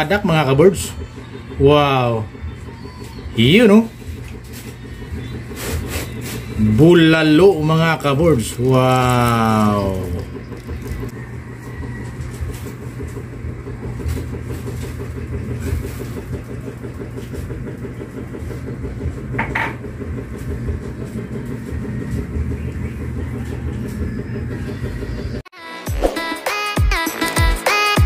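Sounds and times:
low motor rumble: 0.0s - 25.4s.

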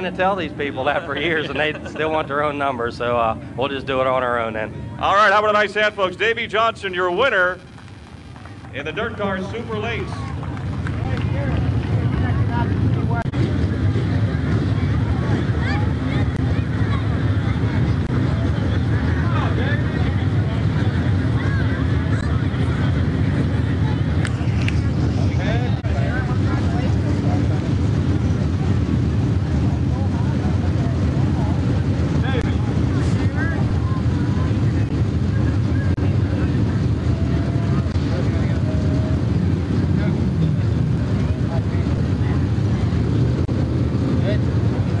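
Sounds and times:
people talking faintly: 0.0s - 45.0s
steady low rumble: 0.0s - 45.0s.

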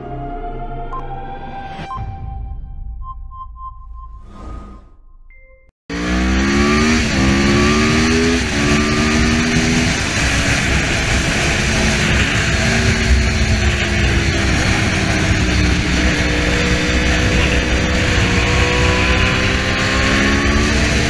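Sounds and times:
motorcycle engine accelerating hard: 5.9s - 21.0s
loud wind noise: 6.0s - 21.0s.

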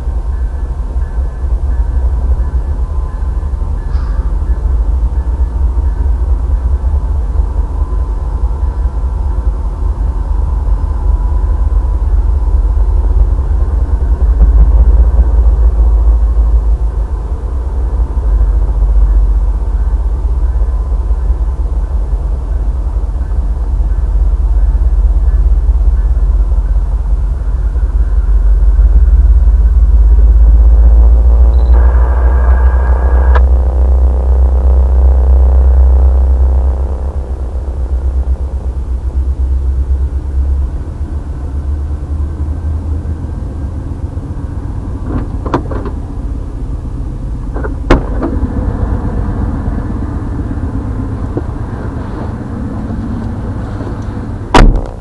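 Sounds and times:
train wheel squeal: 0.0s - 6.2s
freight train rumbling past: 0.0s - 55.0s.

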